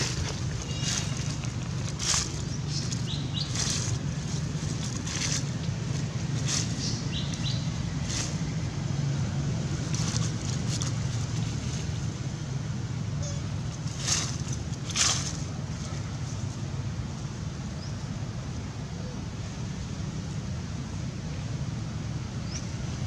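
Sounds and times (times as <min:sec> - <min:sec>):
dry leaves rustling and crackling: 0:00.0 - 0:17.3
steady low rumble: 0:00.0 - 0:18.4.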